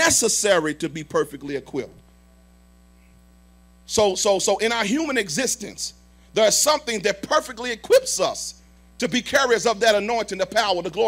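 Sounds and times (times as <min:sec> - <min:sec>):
electrical mains hum: 0:00.0 - 0:11.0
man's voice: 0:03.9 - 0:11.0.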